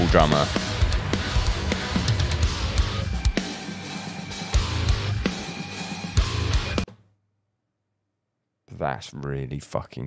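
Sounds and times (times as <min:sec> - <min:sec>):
distorted electric guitar: 0:00.0 - 0:06.8
drum kit and cymbals: 0:00.0 - 0:06.9.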